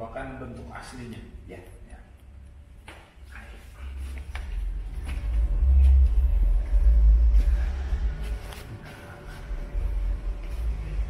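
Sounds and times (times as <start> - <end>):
low rumble on microphone: 3.3 - 11.0.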